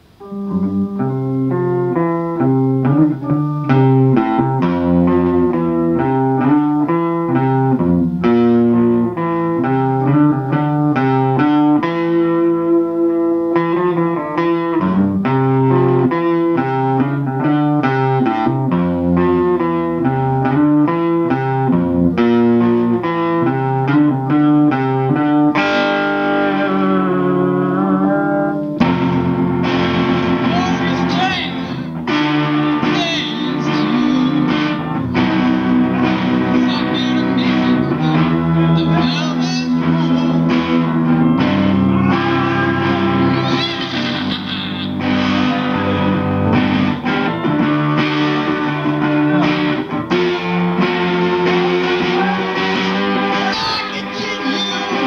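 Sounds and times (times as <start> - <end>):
rock band with electric guitar: 0.0 - 55.0.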